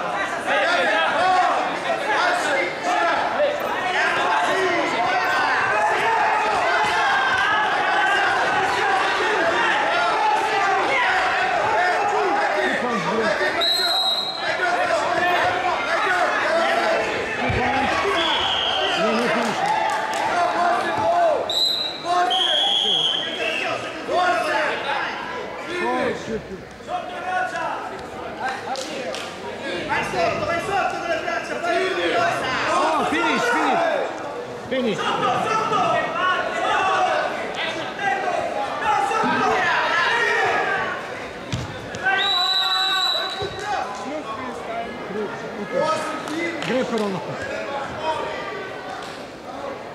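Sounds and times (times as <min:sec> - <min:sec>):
voices echoing in a hall: 0:00.0 - 0:49.9
short high whistle blasts: 0:42.2 - 0:43.4.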